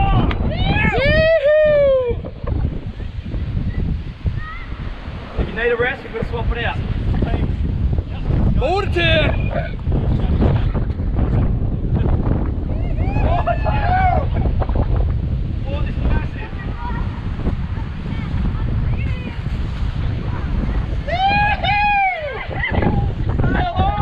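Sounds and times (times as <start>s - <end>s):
ocean surf breaking on rocks: 0.0s - 24.0s
wind buffeting microphone: 0.0s - 24.0s.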